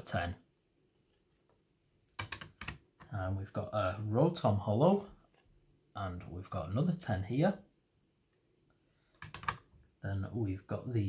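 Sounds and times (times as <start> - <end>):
plastic cases clicking together: 9.2 - 9.7.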